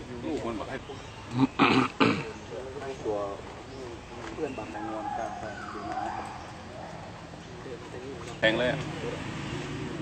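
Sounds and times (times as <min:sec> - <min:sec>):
people talking: 0:00.0 - 0:06.4, 0:07.4 - 0:09.3
animal call: 0:04.6 - 0:07.2.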